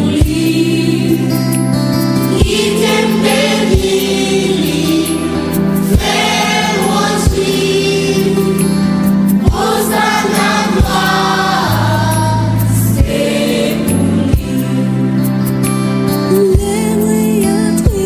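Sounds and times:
gospel choir singing: 0.0 - 16.4
sustained bass notes: 0.0 - 17.2.

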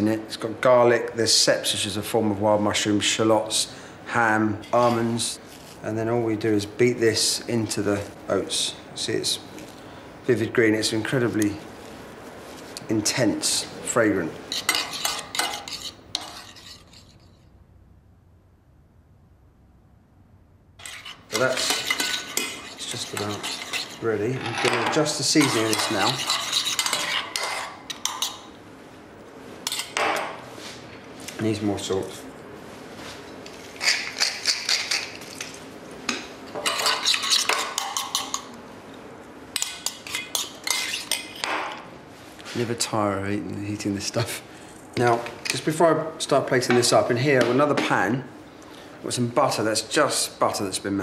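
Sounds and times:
metal spoon scraping a pan: 14.5 - 17.5, 20.8 - 28.5, 36.5 - 38.5, 39.6 - 41.5.

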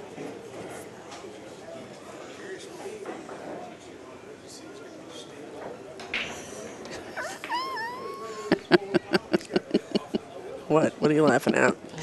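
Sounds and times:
gliding meow-like call: 7.2 - 8.3.

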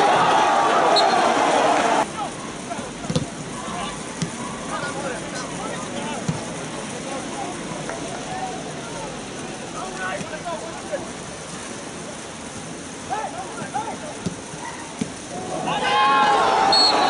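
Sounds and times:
distant shouts: 0.0 - 4.9, 13.0 - 17.0
steady background hiss: 0.0 - 17.0.

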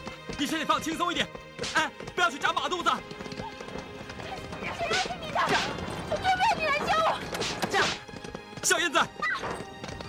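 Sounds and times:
background music: 0.0 - 10.0
horse hoofbeats: 0.0 - 10.0.

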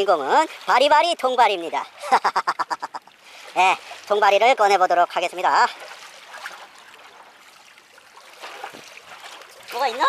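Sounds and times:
small waves lapping against rocks: 2.8 - 10.0.

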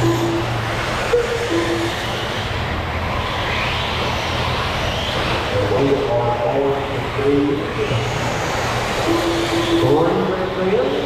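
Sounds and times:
rc car motor whine: 0.0 - 11.0.

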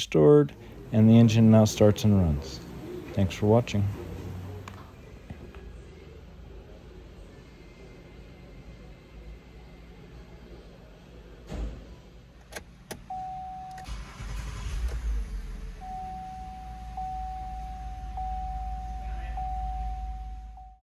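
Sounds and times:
car engine starting and idling: 0.0 - 9.5, 11.2 - 20.8
electronic warning tone: 15.8 - 20.8.

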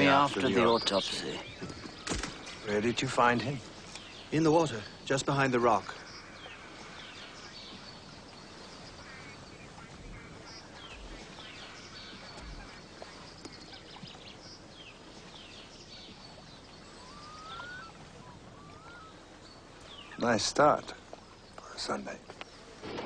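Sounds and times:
steady background hiss: 0.0 - 23.0
short rising bird calls: 15.9 - 20.2.

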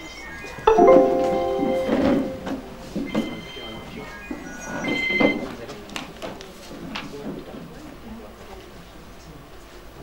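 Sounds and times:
bell-like electronic melody: 0.7 - 3.4.

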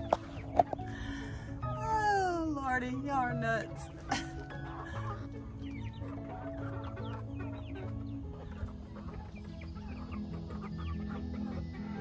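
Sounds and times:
background music with low notes: 0.0 - 12.0
chickens clucking: 0.0 - 12.0.

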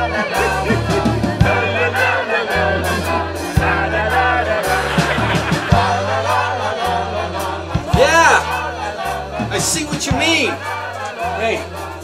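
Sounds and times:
held bass notes: 0.0 - 12.0
voices singing in chorus: 0.0 - 12.0.

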